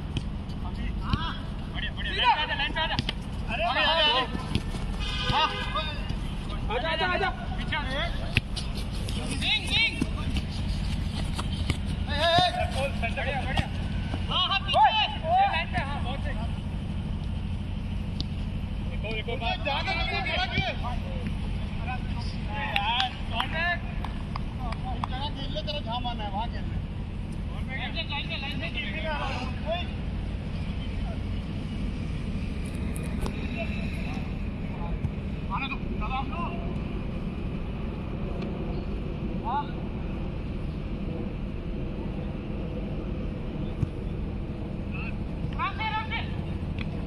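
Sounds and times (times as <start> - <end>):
steady low rumble: 0.0 - 47.0
footballers shouting: 0.7 - 8.4, 9.2 - 16.4, 19.3 - 23.9
ball being kicked: 4.2 - 6.3, 9.9 - 14.3.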